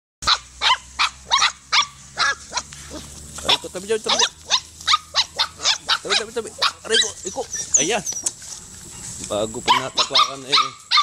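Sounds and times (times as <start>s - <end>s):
puppy yapping: 0.2s - 8.4s, 9.7s - 11.0s.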